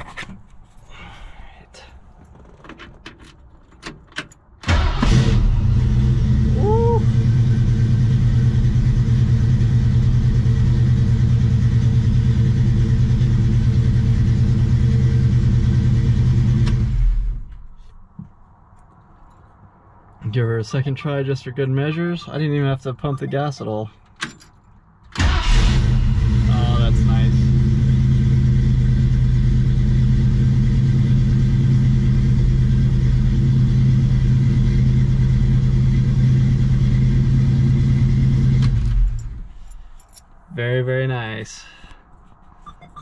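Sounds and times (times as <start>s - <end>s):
key and seat clicks: 2.1s - 4.5s, 24.0s - 24.8s
starter cranking engine: 4.6s - 6.1s, 25.2s - 26.5s
car engine idling: 4.7s - 16.6s, 25.2s - 39.8s.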